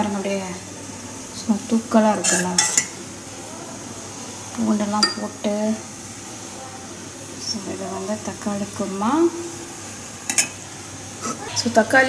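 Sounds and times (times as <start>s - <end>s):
metal ladle clinking on pot: 2.3s - 2.9s, 5.0s - 5.3s, 10.3s - 10.6s.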